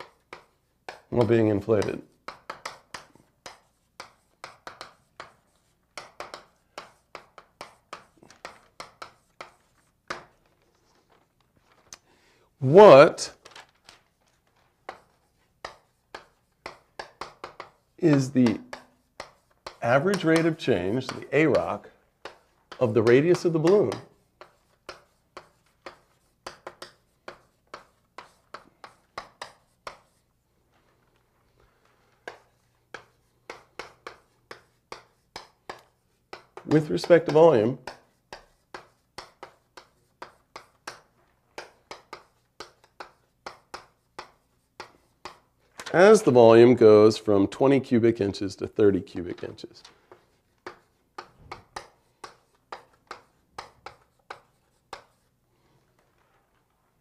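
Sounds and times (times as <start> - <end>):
chalk writing on blackboard: 0.0 - 11.1, 14.1 - 45.7, 48.7 - 56.8.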